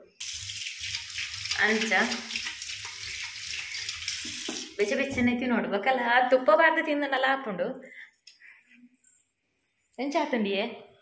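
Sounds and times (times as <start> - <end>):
water running from a tap: 0.0 - 4.9
person speaking: 1.6 - 2.3.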